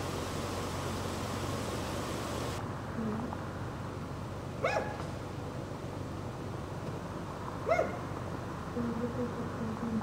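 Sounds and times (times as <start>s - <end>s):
dog barking: 4.6s - 5.0s, 7.6s - 8.0s.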